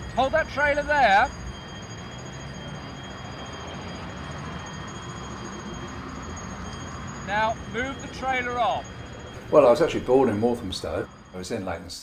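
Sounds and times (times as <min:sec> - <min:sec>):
faint high whine: 0:00.0 - 0:12.0
street background noise: 0:00.0 - 0:12.0.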